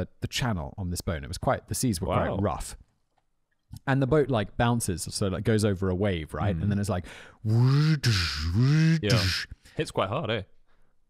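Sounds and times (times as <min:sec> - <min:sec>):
man making vocal sound effects: 0:07.4 - 0:09.6.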